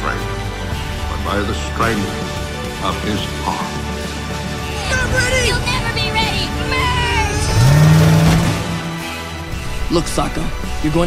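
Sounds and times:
music: 0.0s - 11.0s
van engine revving: 4.9s - 9.4s.

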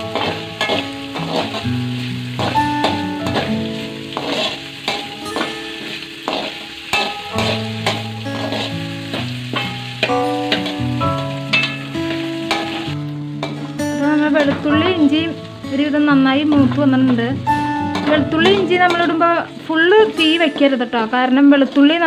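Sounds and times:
metal spatula scraping a wok: 0.0s - 13.7s
plucked-string background music: 0.0s - 22.0s
spices sizzling in hot oil: 0.0s - 22.0s.

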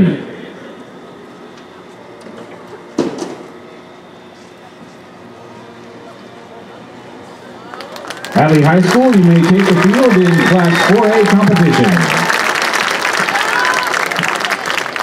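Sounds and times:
announcer's echoing amplified voice: 0.0s - 0.4s, 8.4s - 12.3s
stadium ambience: 0.0s - 15.0s.

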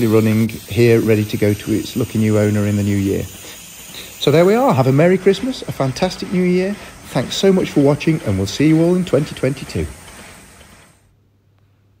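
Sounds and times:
model locomotive steam hiss: 0.0s - 11.1s.

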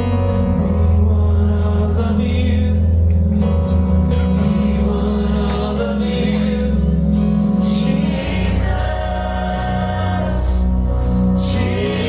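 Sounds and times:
church band worship music: 0.0s - 12.0s.

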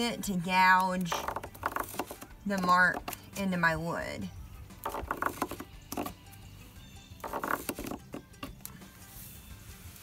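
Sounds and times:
concrete scraping across wood: 1.1s - 3.1s, 4.8s - 6.2s, 7.2s - 8.2s.

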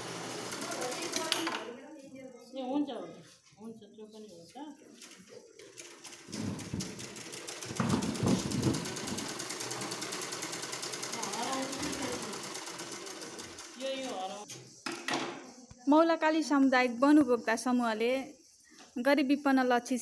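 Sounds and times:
sewing machine stitching: 0.0s - 1.6s, 5.0s - 14.4s.

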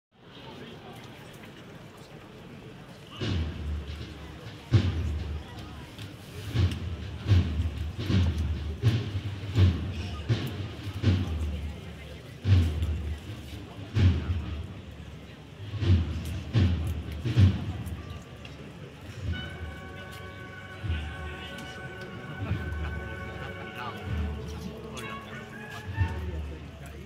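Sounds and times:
marching drums beating: 3.1s - 26.9s
cornets holding notes: 19.1s - 26.8s.

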